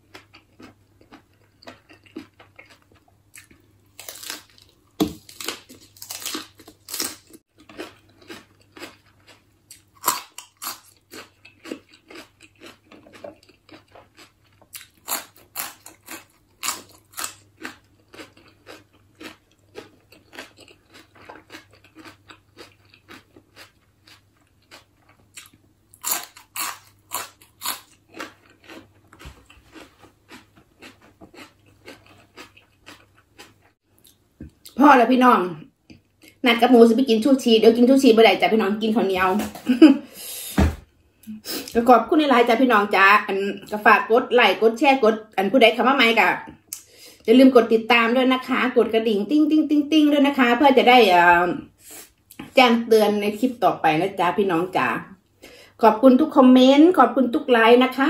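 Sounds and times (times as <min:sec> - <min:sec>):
chewing and crunching lettuce: 0:00.0 - 0:34.8.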